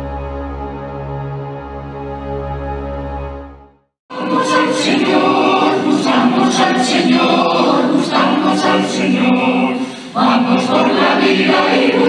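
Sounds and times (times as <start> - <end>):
mixed choir singing religious song: 4.1 - 12.0.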